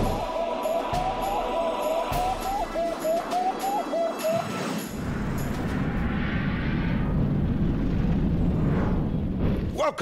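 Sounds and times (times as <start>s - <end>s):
hissing swell: 0.0s - 7.2s
deep rocket-like rumbling: 5.0s - 9.8s.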